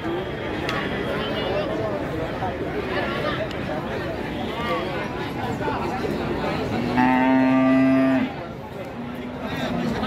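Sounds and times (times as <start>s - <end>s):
cow mooing: 6.9s - 8.3s.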